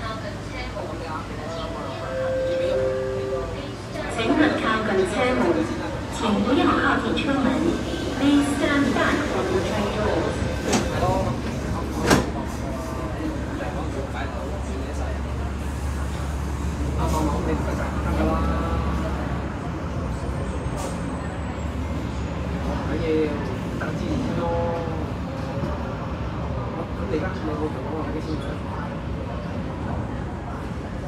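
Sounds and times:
train low rumble: 0:00.0 - 0:31.0
train doors closing thud: 0:10.6 - 0:12.5.

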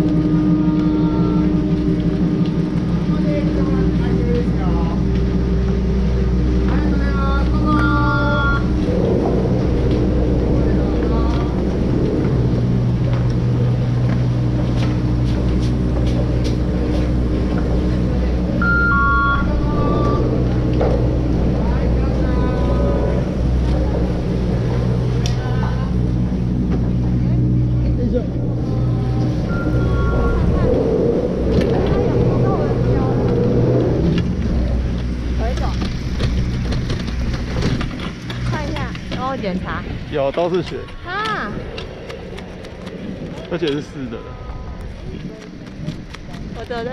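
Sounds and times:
low mechanical machinery hum: 0:00.0 - 0:46.9.

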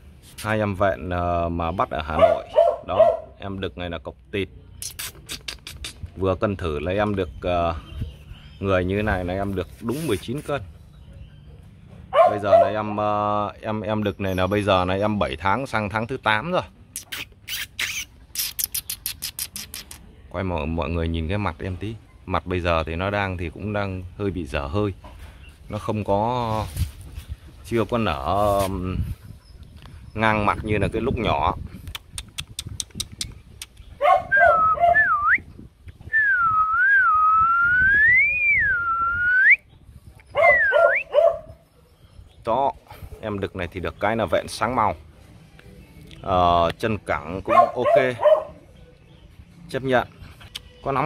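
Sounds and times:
sharp clicks: 0:17.0 - 0:20.1, 0:31.8 - 0:33.9
person whistling for a dog: 0:34.3 - 0:39.7, 0:40.5 - 0:41.1.

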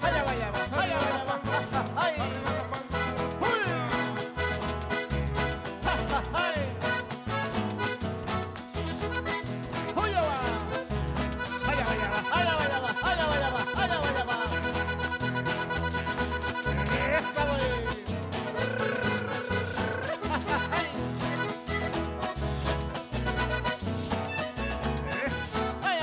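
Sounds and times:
voices singing: 0:00.0 - 0:04.2, 0:05.7 - 0:07.1, 0:18.6 - 0:21.0
folk band with guitars and accordion: 0:00.0 - 0:26.0.

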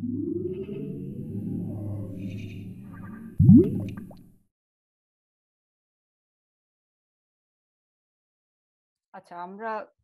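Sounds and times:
rising electronic bloop: 0:03.4 - 0:04.2.

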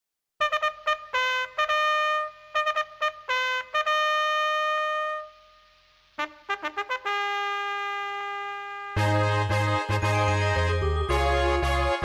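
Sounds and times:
trumpet fanfare: 0:00.4 - 0:05.5, 0:06.2 - 0:12.0.

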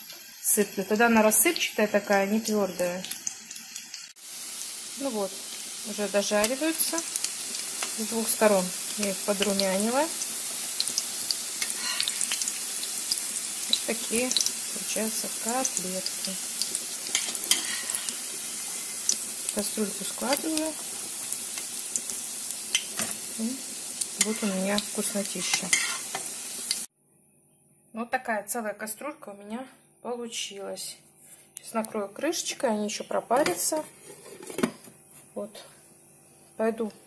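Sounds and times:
cutlets sizzling in hot oil: 0:00.0 - 0:26.9.

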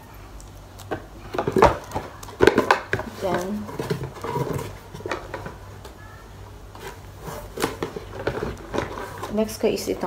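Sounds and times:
items knocking and tapping: 0:00.8 - 0:06.0, 0:06.8 - 0:09.6.

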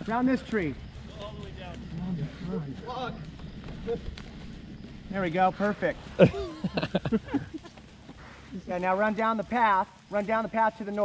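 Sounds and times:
steady low rumble: 0:00.0 - 0:10.1.

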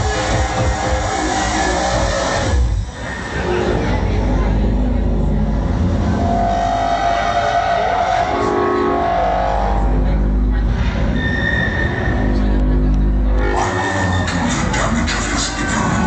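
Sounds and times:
drum and bass music: 0:00.0 - 0:16.0
voice over music: 0:13.2 - 0:16.0.

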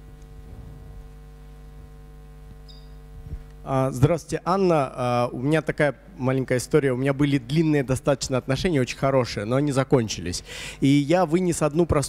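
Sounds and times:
electrical mains hum: 0:00.0 - 0:12.0
man speaking into a microphone: 0:03.7 - 0:12.0.

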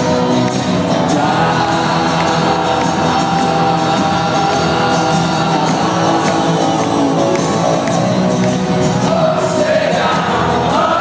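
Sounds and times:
live rock band playing: 0:00.0 - 0:11.0.

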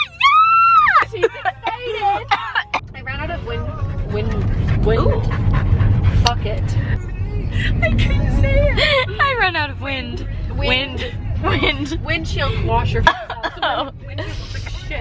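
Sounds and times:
women's voices: 0:00.0 - 0:05.4, 0:06.2 - 0:07.0, 0:07.6 - 0:15.0
car cabin rumble: 0:00.0 - 0:15.0.

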